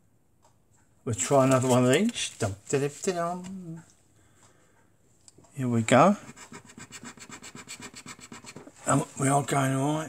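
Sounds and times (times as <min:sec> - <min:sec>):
coin scratching a scratchcard: 0:06.2 - 0:09.0.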